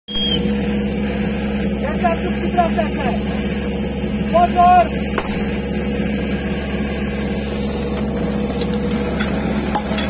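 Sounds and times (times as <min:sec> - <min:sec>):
engine humming: 0:00.1 - 0:10.0
voices: 0:01.8 - 0:03.5, 0:04.2 - 0:05.0.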